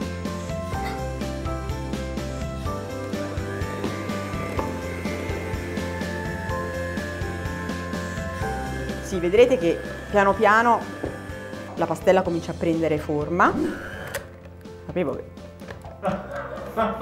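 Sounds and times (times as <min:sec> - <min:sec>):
background music: 0:00.0 - 0:17.0
electric hand mixer running: 0:01.2 - 0:14.3.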